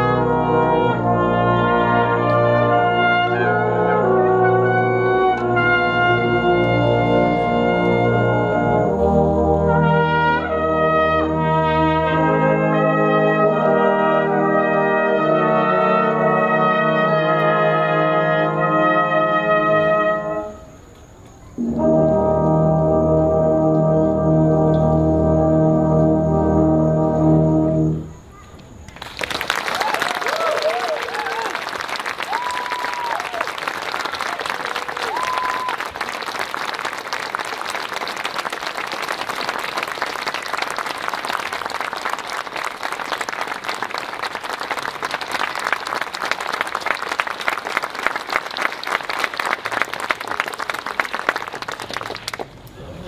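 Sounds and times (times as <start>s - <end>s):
audience applauding: 28.9s - 52.7s.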